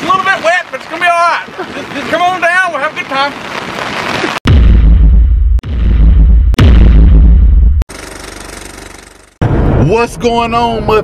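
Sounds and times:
man's voice: 9.8 - 11.0.

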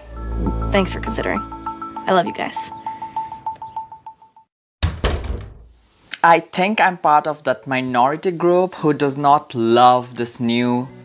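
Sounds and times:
deep impact hit: 0.2 - 1.5.

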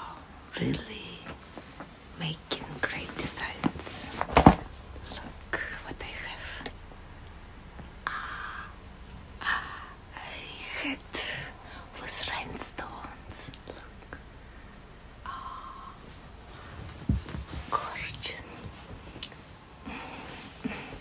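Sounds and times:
woman whispering: 0.0 - 1.4, 2.2 - 4.2, 5.0 - 6.7, 9.4 - 14.2, 17.6 - 18.7.

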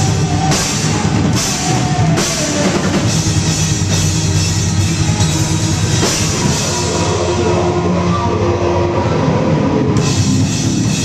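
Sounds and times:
loud rock music with droning tones: 0.0 - 11.0.

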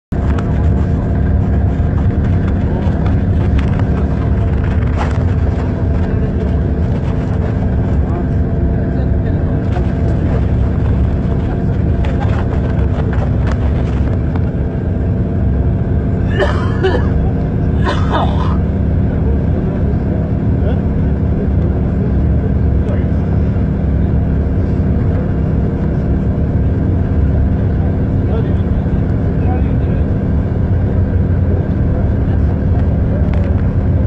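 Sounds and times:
road noise drone: 0.1 - 34.0
vehicle engine running: 0.1 - 34.0.

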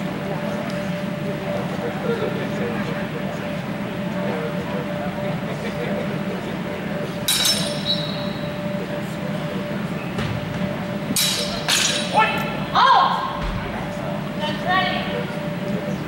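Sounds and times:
steel swords clashing: 7.2 - 8.2, 11.2 - 12.4.

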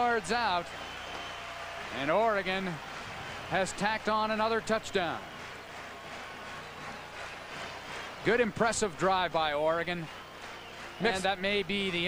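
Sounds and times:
crowd cheering and clapping: 0.0 - 12.0.

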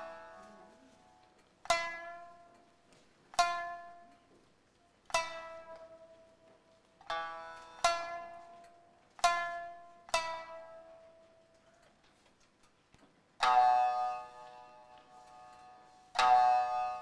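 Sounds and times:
shamisen plucked notes: 0.0 - 11.8, 13.4 - 17.0.

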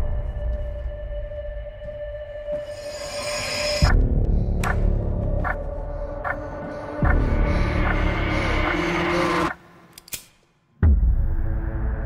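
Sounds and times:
low droning horror score: 0.0 - 9.9.

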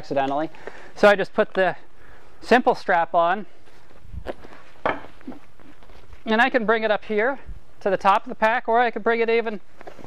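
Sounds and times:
strap knocking and rustling: 4.1 - 6.2.

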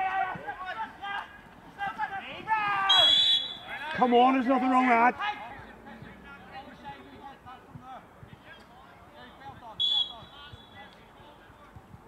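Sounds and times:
faint shouts of players: 0.0 - 5.7
referee's whistle blast: 2.9 - 3.8, 9.8 - 10.9.

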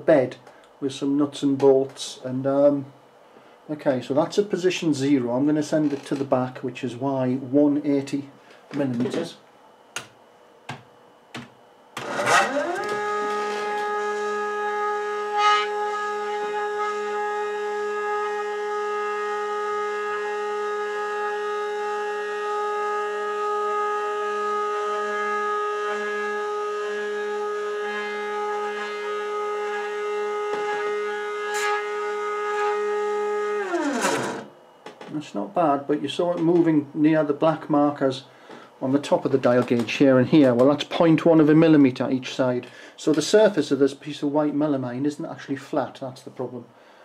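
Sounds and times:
stepper motor whine: 12.0 - 35.0.

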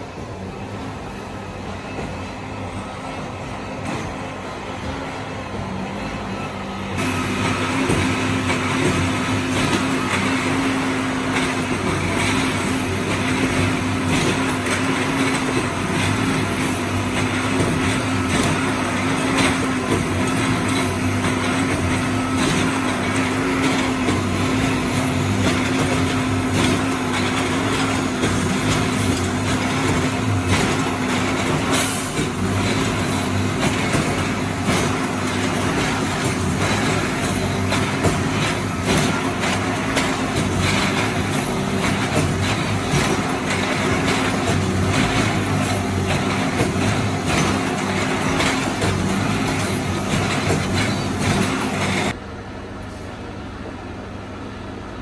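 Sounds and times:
track tamper machine drone: 0.0 - 52.2.

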